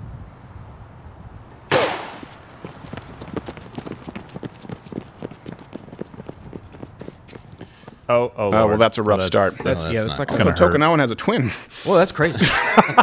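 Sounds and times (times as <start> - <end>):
starter pistol shot: 1.7 - 2.3
footsteps sprinting on pavement: 1.8 - 8.1.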